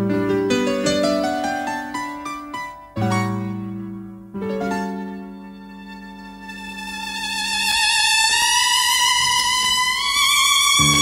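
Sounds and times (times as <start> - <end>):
violin long high note: 5.0 - 11.0.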